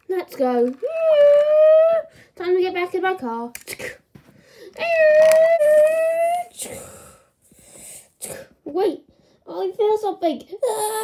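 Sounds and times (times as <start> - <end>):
breathy hiss: 6.6 - 8.5.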